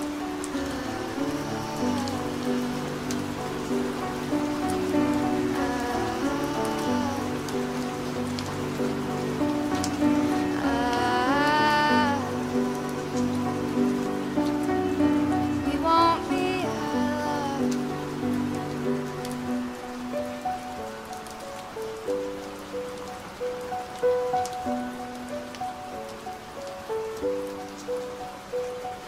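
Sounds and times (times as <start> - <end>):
person singing: 0.0 - 8.1, 10.0 - 13.3, 15.1 - 18.4
soft acoustic song: 0.0 - 29.0
steady rain falling: 0.0 - 29.0.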